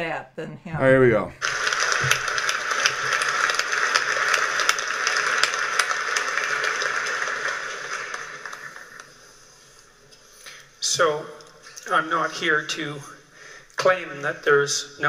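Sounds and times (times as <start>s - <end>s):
audience applauding: 1.4s - 9.4s.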